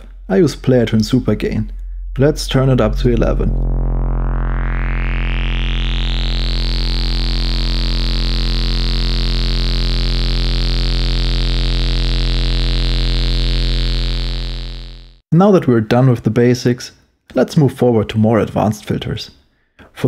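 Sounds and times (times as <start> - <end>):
buzzy synthesizer drone: 0.0 - 15.2.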